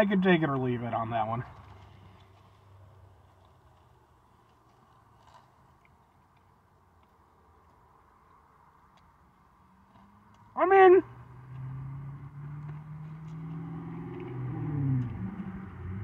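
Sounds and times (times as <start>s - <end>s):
faint chewing: 1.5s - 10.5s.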